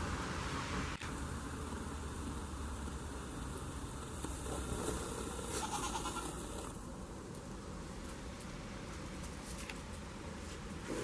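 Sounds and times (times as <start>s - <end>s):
goat bleating: 5.6s - 6.4s.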